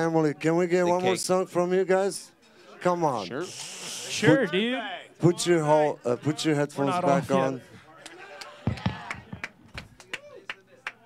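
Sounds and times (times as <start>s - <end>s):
people clapping: 8.0s - 11.0s.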